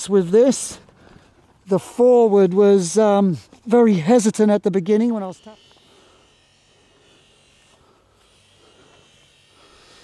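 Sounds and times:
light hiss: 5.2 - 10.0.

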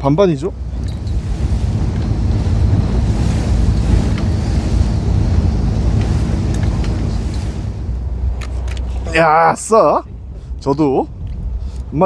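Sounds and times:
hiss of wind and waves: 0.0 - 12.0
steady low rumble: 0.0 - 12.0
wind buffeting microphone: 0.0 - 12.0.

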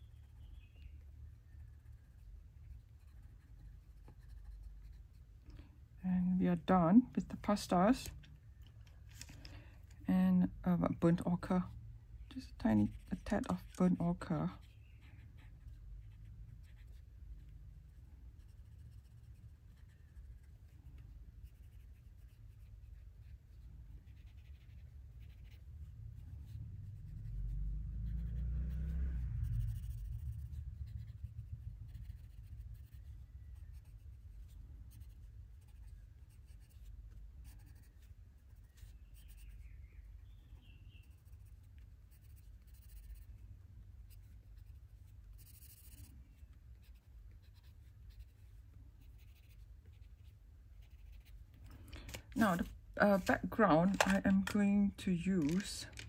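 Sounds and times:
pencil scratching on paper: 2.1 - 5.3, 12.6 - 39.7, 44.0 - 46.1, 46.8 - 51.4.

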